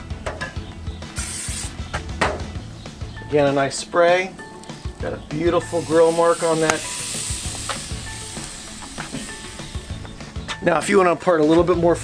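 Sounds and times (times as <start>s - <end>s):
background music: 0.0s - 12.0s
aerosol oil spray hiss: 1.2s - 1.8s, 5.6s - 10.1s.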